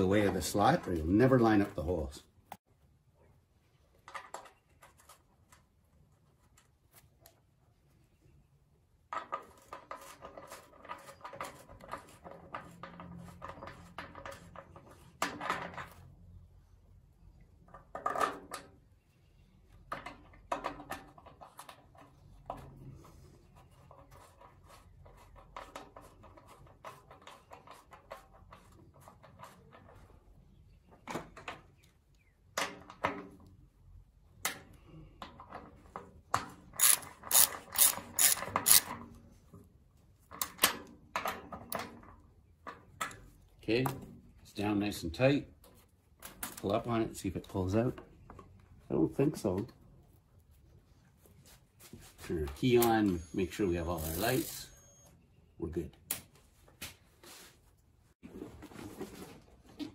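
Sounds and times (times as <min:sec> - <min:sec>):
hand ratchet clicking: 0:36.8 - 0:38.9.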